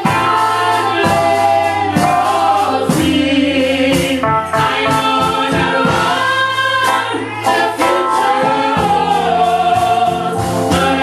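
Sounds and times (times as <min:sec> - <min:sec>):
gospel choir singing: 0:00.0 - 0:11.0.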